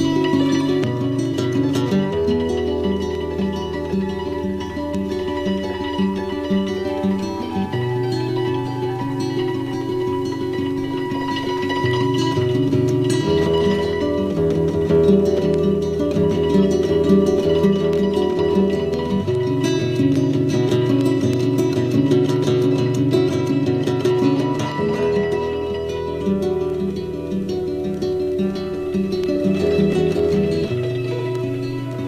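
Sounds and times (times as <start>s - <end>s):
picked acoustic guitar: 0.0s - 32.0s.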